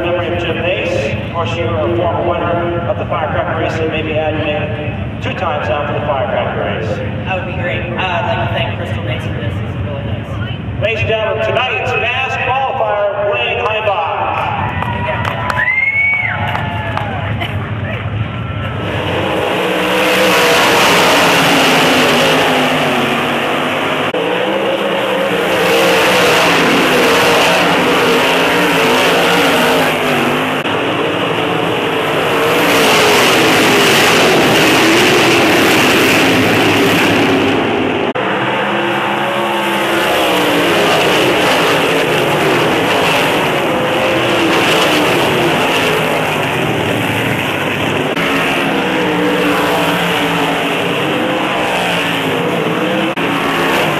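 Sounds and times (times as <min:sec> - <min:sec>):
racing car engines at full throttle: 0:00.0 - 0:53.9.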